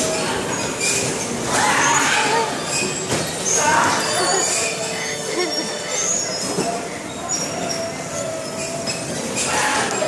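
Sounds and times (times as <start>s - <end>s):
bumper cars rumbling: 0.0s - 10.0s
thin high squeals: 0.0s - 10.0s.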